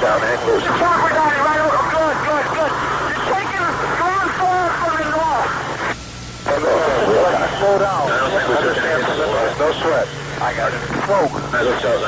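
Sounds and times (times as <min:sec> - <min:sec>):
man talking over radio: 0:00.0 - 0:12.0
radio hiss: 0:00.0 - 0:12.0.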